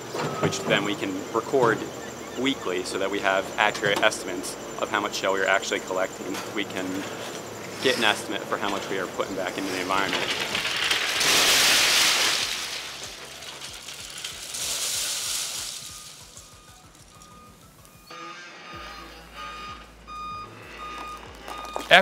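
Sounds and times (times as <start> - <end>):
shells clattering into metal dumpster: 9.9 - 17.4.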